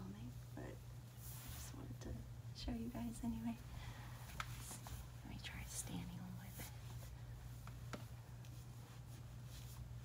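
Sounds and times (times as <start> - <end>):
steady low hum: 0.0 - 10.0
woman whispering: 4.7 - 6.9.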